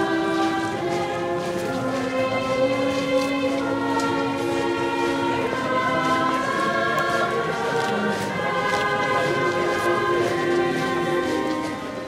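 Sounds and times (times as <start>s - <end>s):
choir singing sacred music: 0.0s - 12.0s.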